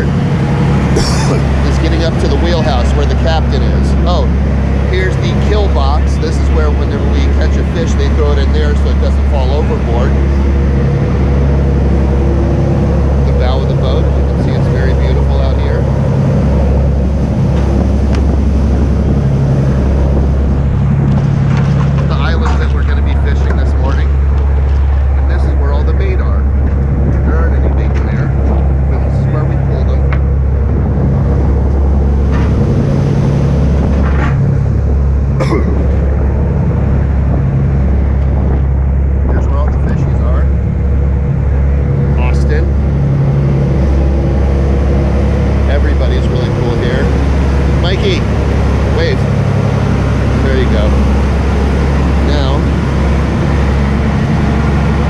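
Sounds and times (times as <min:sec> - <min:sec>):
boat engine droning: 0:00.0 - 0:55.0.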